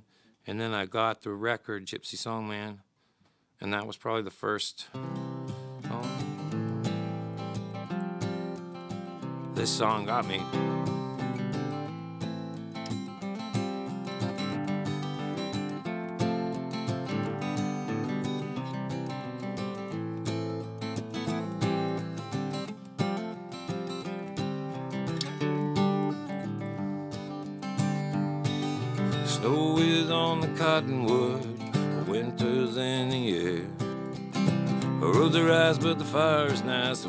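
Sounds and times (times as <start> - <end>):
acoustic guitar strumming: 5.0 - 37.0.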